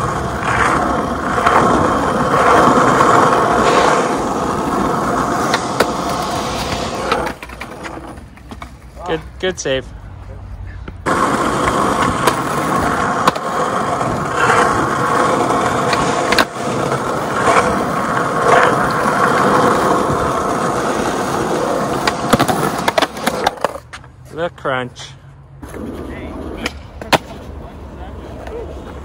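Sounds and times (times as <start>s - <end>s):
skateboard wheels rolling on asphalt: 0.0s - 29.0s.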